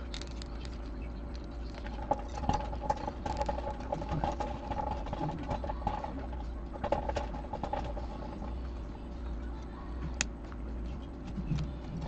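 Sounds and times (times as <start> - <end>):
clicks and rustles of handling wire: 0.0 - 8.5
faint wavering whine: 0.0 - 12.0
low hum: 0.0 - 12.0.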